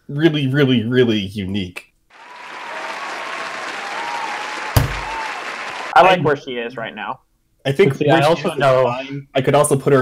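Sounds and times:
applause: 2.1 - 6.0
heavy thump: 4.8 - 5.1.

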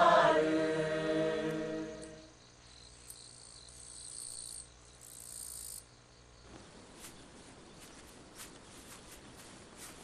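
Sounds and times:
crickets chirring: 0.0 - 10.0
soft rustling: 6.5 - 10.0.

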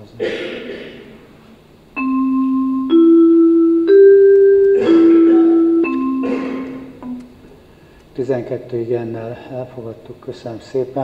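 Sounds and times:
descending marimba-like chime: 2.0 - 7.2.

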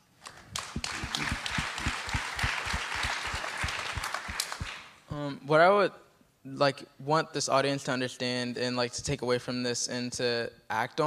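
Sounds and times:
audience applauding: 0.3 - 5.0.

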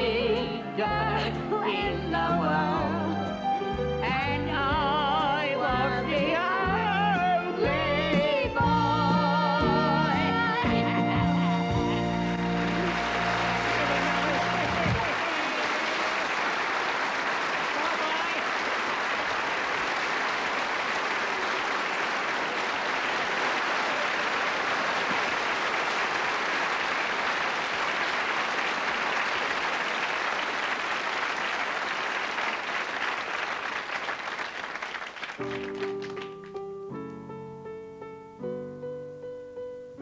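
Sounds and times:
piano playing: 0.0 - 15.2, 35.4 - 40.0
audience applauding: 10.8 - 36.6.

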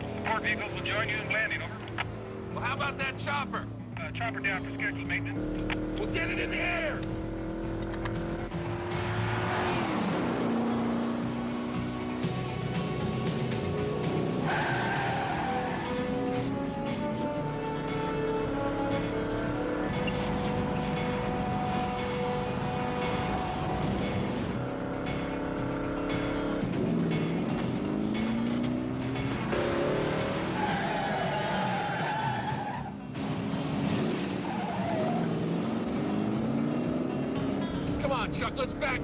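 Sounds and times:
background music: 0.0 - 39.0
car engines running hard: 0.0 - 39.0
tires skidding: 2.6 - 11.9, 14.0 - 24.9, 26.5 - 37.4.

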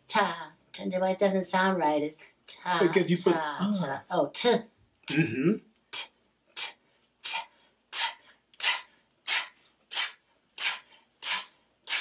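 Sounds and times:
beatboxing t sounds: 5.1 - 12.0.

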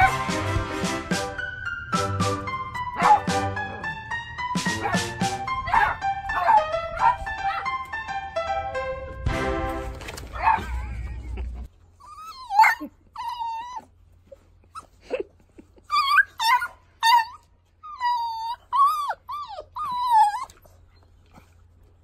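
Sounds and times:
puppy whining and yipping: 10.4 - 15.0, 15.8 - 21.8.

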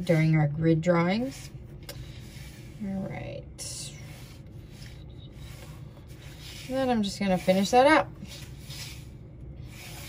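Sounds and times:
pencil scratching on paper: 3.9 - 10.0.

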